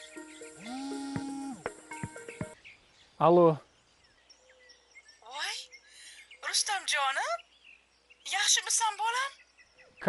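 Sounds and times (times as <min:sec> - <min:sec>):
faint bird chirps: 0:00.0 - 0:10.0.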